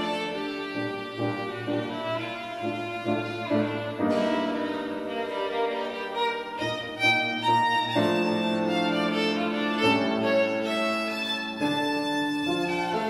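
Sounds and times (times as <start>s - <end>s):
piano accompaniment: 0.0s - 13.0s
violin melody: 0.0s - 13.0s.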